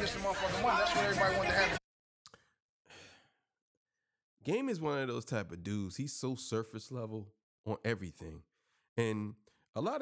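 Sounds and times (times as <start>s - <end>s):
man sighing: 2.9s - 3.3s.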